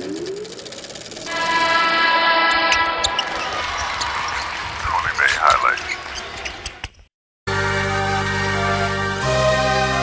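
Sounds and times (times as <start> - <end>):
held electronic chord: 1.3 - 3.3.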